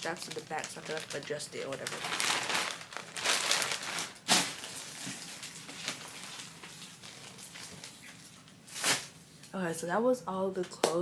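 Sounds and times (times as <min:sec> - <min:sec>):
clothing rustling and crinkling: 0:00.0 - 0:09.6.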